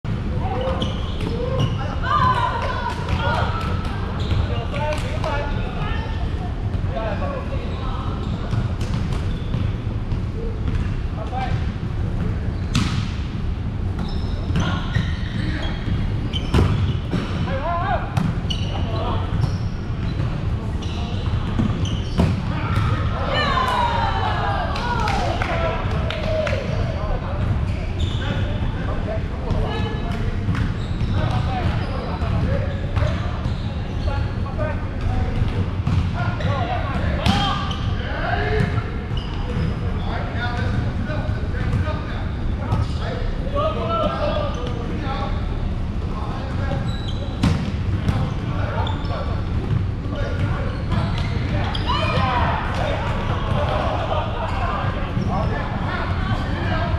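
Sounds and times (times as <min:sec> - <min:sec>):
volleyball hits and thuds: 0:12.7 - 0:13.3.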